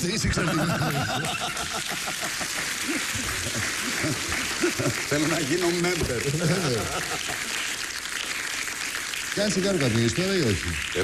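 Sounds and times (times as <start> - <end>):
audience applauding: 0.4 - 11.0.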